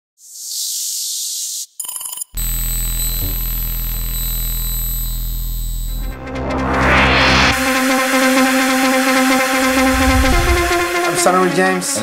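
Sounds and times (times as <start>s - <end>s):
stuttering glitch: 2.4s - 8.3s, 9.5s - 11.0s
deep synthesizer drone: 5.4s - 11.2s
hissing noise swell: 9.4s - 11.0s.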